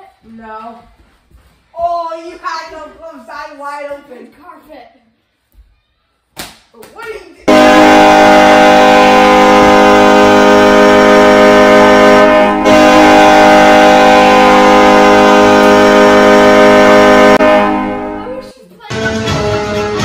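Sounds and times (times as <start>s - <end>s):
ice hockey goal horn: 7.5s - 18.3s.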